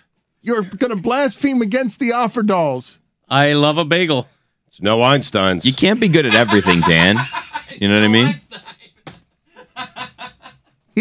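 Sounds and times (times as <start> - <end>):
man chuckling: 6.3 - 8.9.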